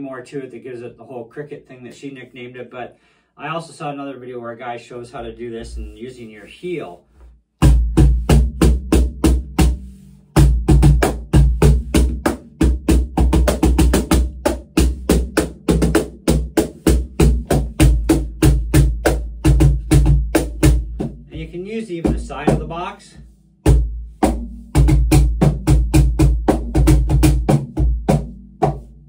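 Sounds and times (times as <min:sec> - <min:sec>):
cajon played by hand: 0:07.7 - 0:22.8, 0:23.7 - 0:29.0.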